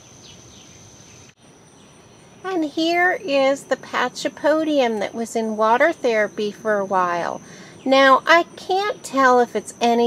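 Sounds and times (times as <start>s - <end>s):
steady high-pitched tone: 2.4s - 10.0s.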